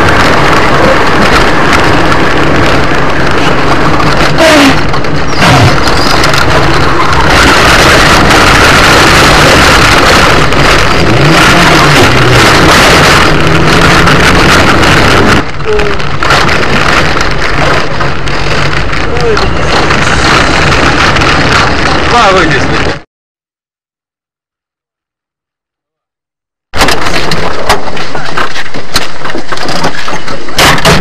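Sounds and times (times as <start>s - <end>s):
car engine running hard: 0.0s - 23.0s
road and wind noise: 0.0s - 23.1s, 26.8s - 31.0s.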